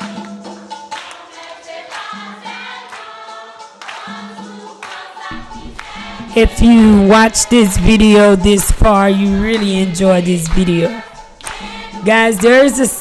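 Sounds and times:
youth choir singing upbeat song: 0.9 - 13.0
steady beat: 5.3 - 13.0.

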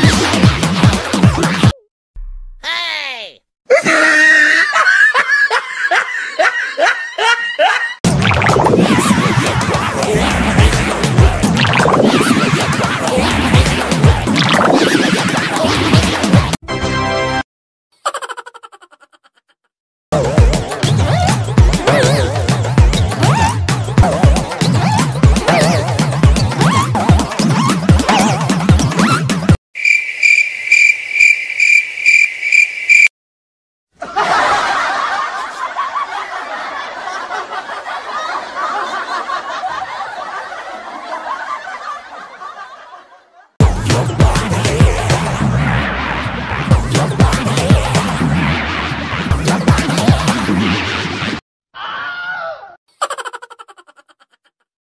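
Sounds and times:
electronic dance music: 0.0 - 1.8, 8.1 - 16.6, 43.6 - 50.6
person laughing: 2.7 - 8.0, 18.0 - 19.7, 53.0 - 54.7
cricket chirp sound effect: 29.8 - 33.1.

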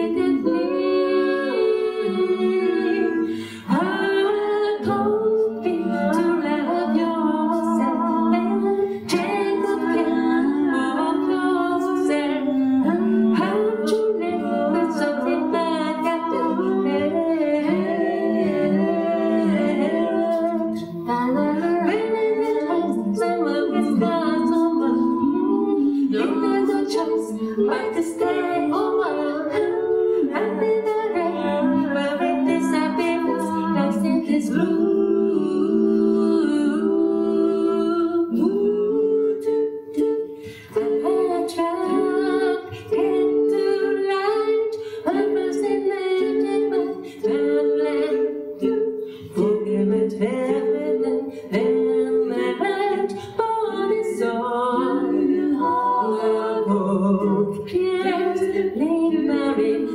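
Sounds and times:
a cappella group singing: 0.0 - 59.9.

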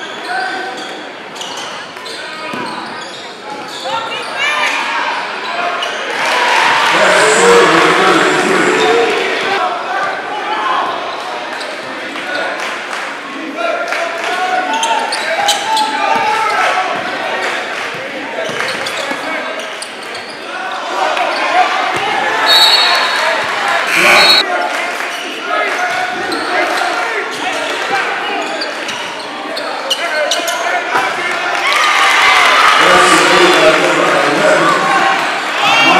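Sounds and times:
voices echoing in a hall: 0.0 - 35.9.

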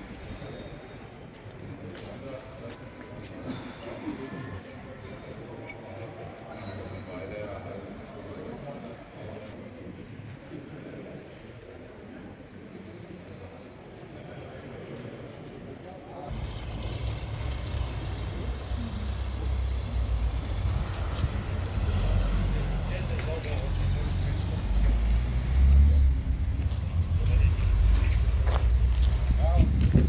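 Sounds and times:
people's voices: 0.0 - 30.0
low rumbling noise: 16.3 - 30.0.

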